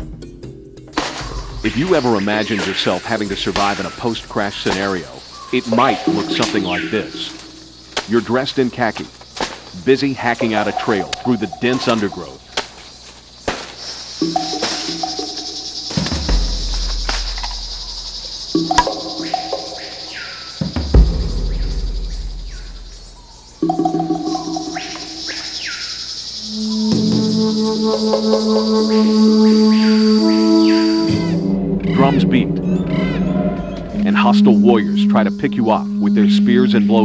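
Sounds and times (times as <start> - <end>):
high insect drone: 0.9 - 37.0
dramatic music: 5.5 - 7.9, 14.2 - 25.3
deep booming hits: 15.9 - 19.3, 20.6 - 23.2.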